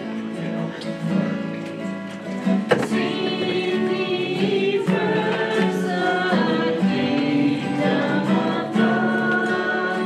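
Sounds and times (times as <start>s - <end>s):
strummed acoustic guitars: 0.0s - 10.0s
voices singing a church song: 2.6s - 10.0s.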